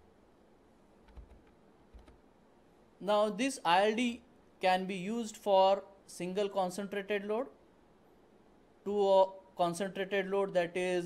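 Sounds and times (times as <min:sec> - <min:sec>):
computer keys clicking: 0:01.0 - 0:02.2.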